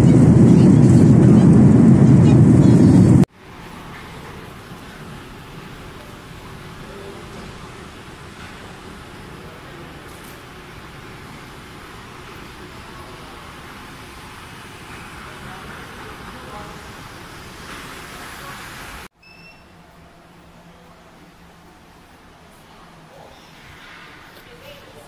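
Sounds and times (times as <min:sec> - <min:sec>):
terminal hall hiss: 0:00.0 - 0:25.0
faint distant voices: 0:03.4 - 0:19.0.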